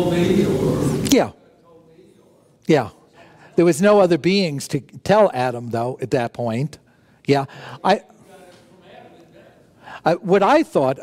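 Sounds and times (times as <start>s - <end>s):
man breathing: 6.9s - 7.8s, 9.8s - 10.1s.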